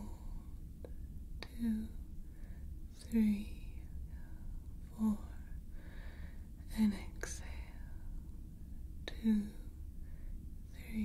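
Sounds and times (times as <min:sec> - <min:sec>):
low engine hum drone: 0:00.0 - 0:11.0.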